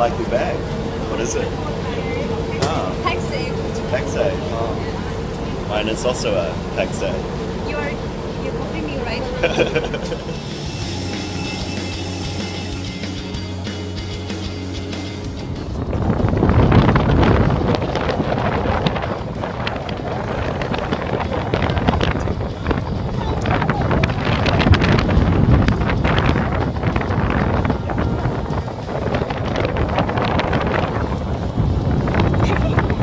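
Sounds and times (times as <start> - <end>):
indistinct voices: 0.0 - 13.9
wind buffeting microphone: 0.0 - 33.0.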